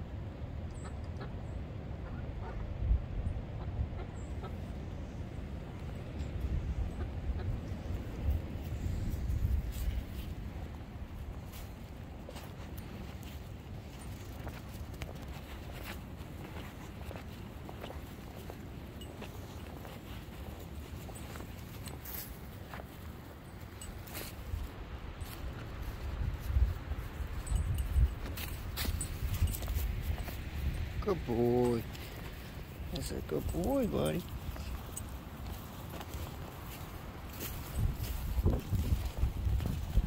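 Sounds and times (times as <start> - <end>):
wind rumbling on microphone: 0.0 - 40.0
footsteps through grass: 8.6 - 40.0.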